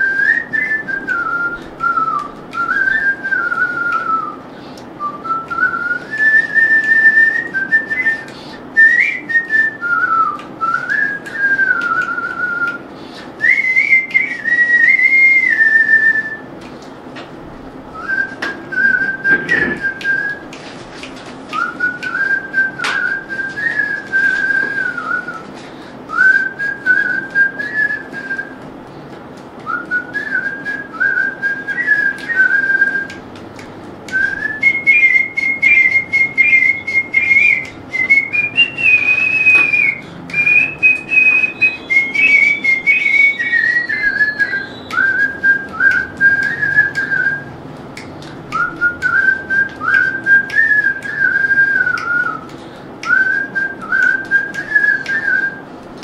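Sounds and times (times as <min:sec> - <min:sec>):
person whistling a melody: 0:00.0 - 0:16.5, 0:18.0 - 0:20.6, 0:21.5 - 0:25.5, 0:26.1 - 0:28.6, 0:29.6 - 0:33.2, 0:34.1 - 0:55.7.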